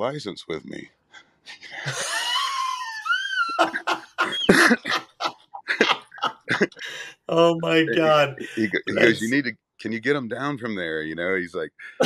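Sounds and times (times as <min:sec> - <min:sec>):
men laughing hard: 0:01.8 - 0:07.1, 0:07.9 - 0:09.3.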